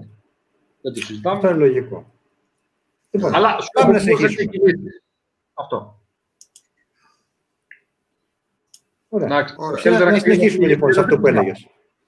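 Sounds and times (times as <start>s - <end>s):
faint clicks: 6.4s - 6.9s, 8.7s - 8.9s.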